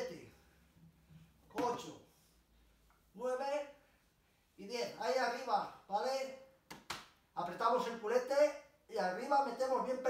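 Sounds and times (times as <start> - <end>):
person talking: 1.5 - 2.1, 7.4 - 10.0.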